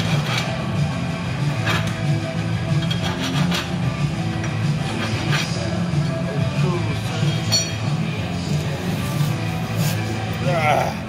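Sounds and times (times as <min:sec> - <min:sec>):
background music with pulsing bass: 0:00.0 - 0:11.0.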